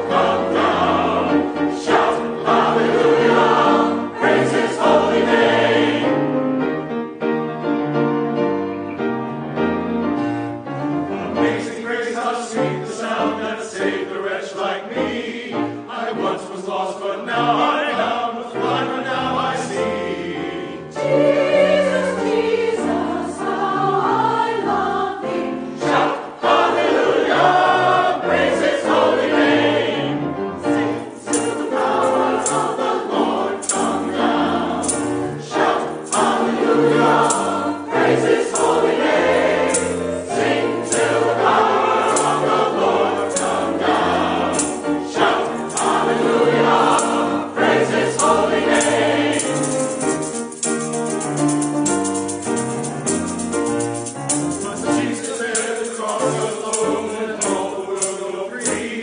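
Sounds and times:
tambourine beat: 0.0 - 6.3, 30.6 - 59.0
choir singing: 0.0 - 7.3, 7.9 - 59.0
piano accompaniment: 0.0 - 59.0.

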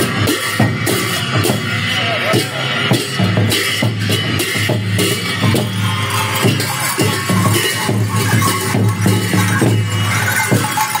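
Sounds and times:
cymbals clashing: 0.0 - 11.0
drum beaten in driving rhythm: 0.0 - 11.0.

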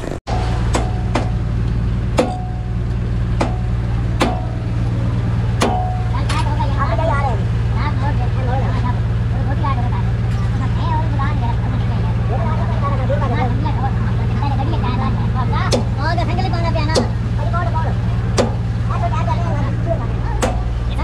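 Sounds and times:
engine idling: 0.0 - 21.0
indistinct voices talking: 0.0 - 21.0
sharp metallic knocks: 0.3 - 4.8, 5.6 - 6.5, 18.3 - 18.7, 20.4 - 20.7.

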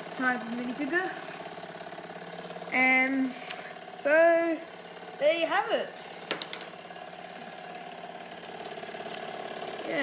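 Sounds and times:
toy steam engine whirring and ticking: 0.0 - 6.1, 8.0 - 10.0.

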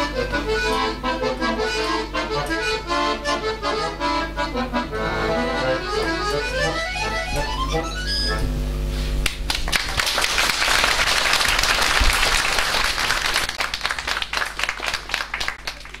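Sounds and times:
button accordion chord: 0.0 - 9.1
audience applauding: 9.2 - 16.0.

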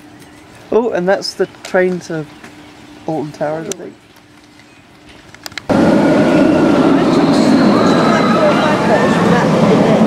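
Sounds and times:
roller coaster train rumbling on track: 5.4 - 10.0.

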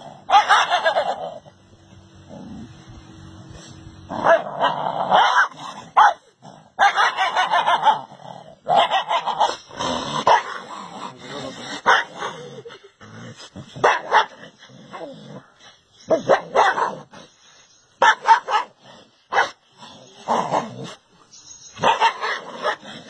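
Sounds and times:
dog barking and yipping: 0.2 - 1.4, 4.1 - 8.1, 8.7 - 10.7, 11.8 - 12.3, 13.8 - 14.5, 16.1 - 17.3, 18.0 - 19.6, 21.7 - 22.9.

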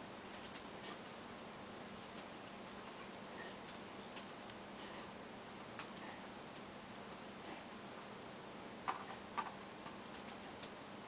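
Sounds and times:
steady low hiss and hum: 0.0 - 11.0.

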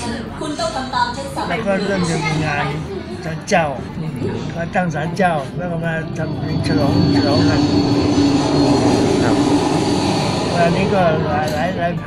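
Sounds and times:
man speaking: 1.5 - 7.8.

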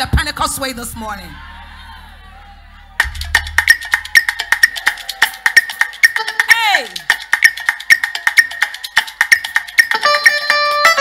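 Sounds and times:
wood block percussion strikes: 3.0 - 11.0.

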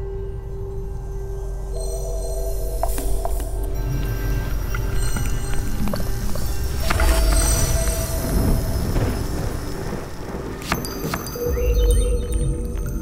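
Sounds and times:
steady low rumble: 0.0 - 10.6.

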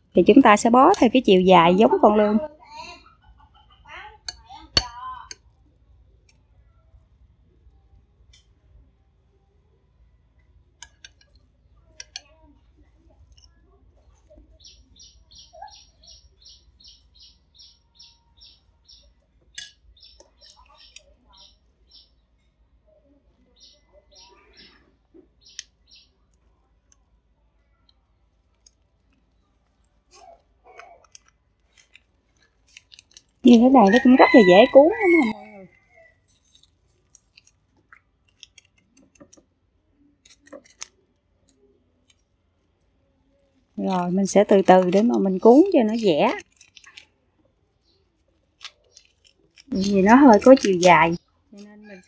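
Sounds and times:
small bird chirping: 10.4 - 26.7, 47.7 - 52.0.

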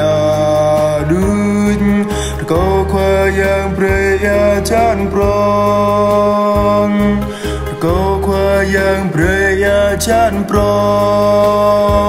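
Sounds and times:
person singing a hymn: 0.0 - 12.0
sustained low accompaniment: 0.0 - 12.0.

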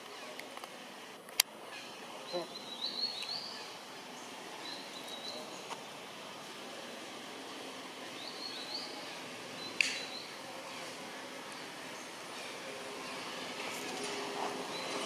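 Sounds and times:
bird chirping: 1.7 - 6.0, 8.0 - 13.5, 14.6 - 15.0.

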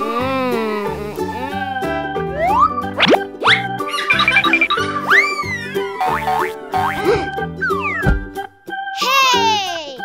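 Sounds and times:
upbeat cartoon music: 0.0 - 10.0.

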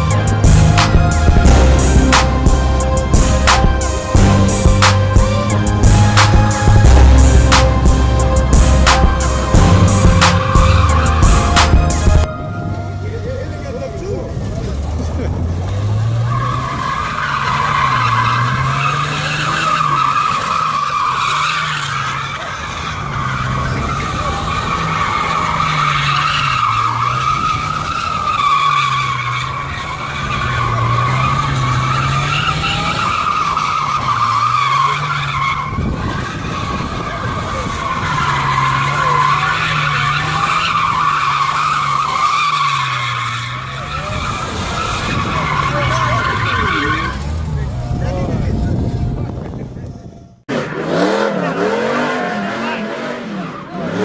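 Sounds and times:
tyres squealing: 0.0 - 49.1
car engine revving: 0.0 - 54.0.

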